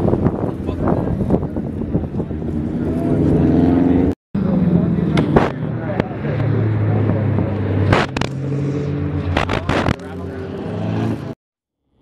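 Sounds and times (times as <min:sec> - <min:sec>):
car engines driving past: 0:00.1 - 0:11.4
sharp cracks: 0:07.8 - 0:08.4, 0:09.3 - 0:10.2.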